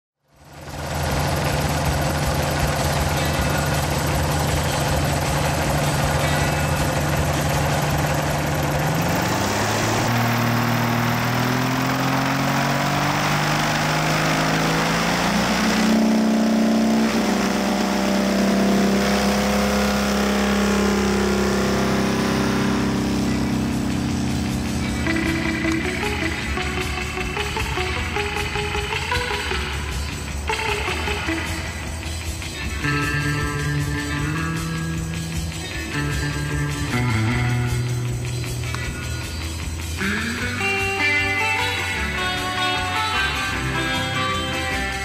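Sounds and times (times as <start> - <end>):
light aircraft engine and propeller: 0.2 - 45.0.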